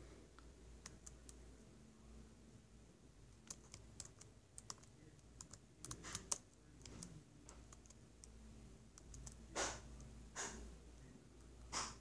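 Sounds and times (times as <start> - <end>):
laptop keyboard clicking: 3.4 - 8.4, 9.0 - 10.5.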